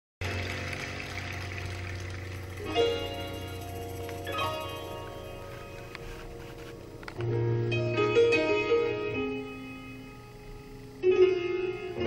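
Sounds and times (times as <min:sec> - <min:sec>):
audience applauding: 0:00.2 - 0:04.9
steady low hum: 0:00.2 - 0:08.2.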